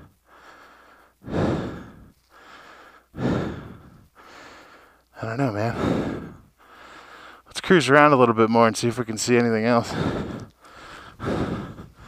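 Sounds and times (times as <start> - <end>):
man breathing heavily: 0.0 - 7.6, 9.6 - 12.0.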